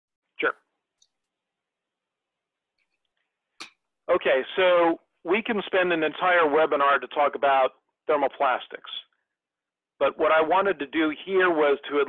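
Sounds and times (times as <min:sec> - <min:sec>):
man speaking: 0:04.1 - 0:09.1, 0:10.0 - 0:12.0.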